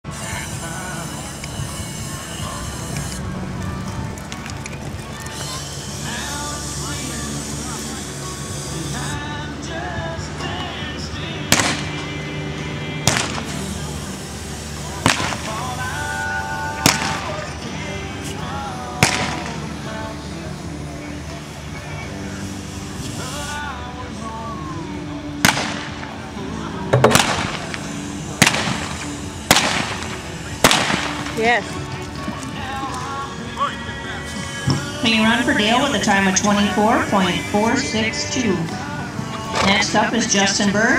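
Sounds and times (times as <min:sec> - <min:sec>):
revolver shots: 0:15.0 - 0:15.6, 0:16.8 - 0:17.4, 0:19.0 - 0:19.6, 0:25.4 - 0:26.1, 0:26.9 - 0:31.4.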